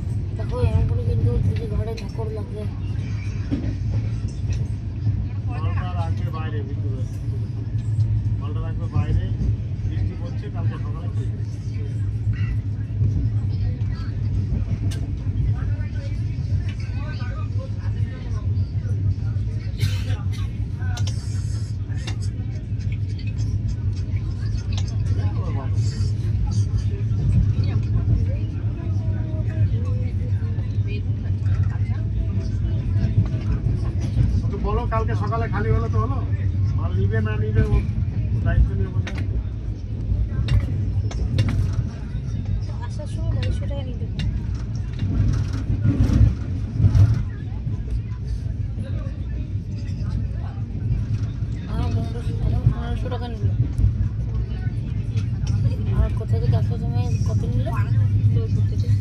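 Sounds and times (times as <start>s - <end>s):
faint passenger voices: 0.0s - 59.0s
train coach wheels rumbling on track: 0.0s - 59.0s.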